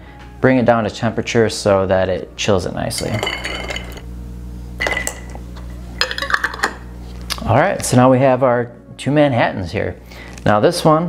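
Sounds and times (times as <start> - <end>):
ringing glass clink: 3.0 - 4.0
spoon stirring ice in glass: 3.0 - 4.0.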